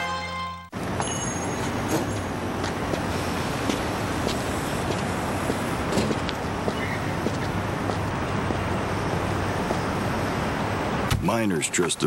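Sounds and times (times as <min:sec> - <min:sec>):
jingle music: 0:00.0 - 0:01.7
road traffic rush: 0:00.0 - 0:12.0.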